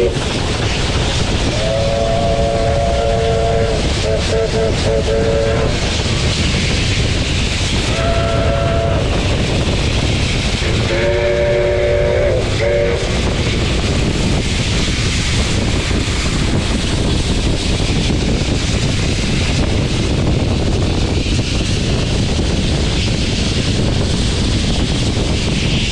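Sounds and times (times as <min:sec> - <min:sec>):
steam locomotive running: 0:00.0 - 0:25.9
wind rushing on microphone: 0:00.0 - 0:25.9
steam whistle: 0:01.5 - 0:05.8, 0:07.9 - 0:09.1, 0:10.6 - 0:13.3.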